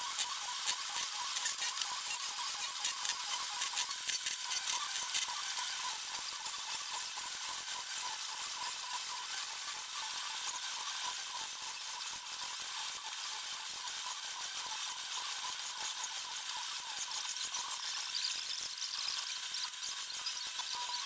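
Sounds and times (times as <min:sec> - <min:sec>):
blade scraping wood: 0:00.7 - 0:02.0.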